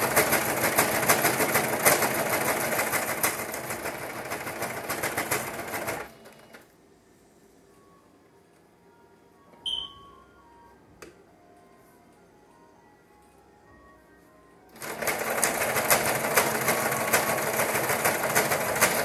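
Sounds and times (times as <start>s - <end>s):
sewing machine stitching: 0.0s - 6.6s, 14.8s - 19.0s
short high-pitched tone: 9.5s - 10.7s.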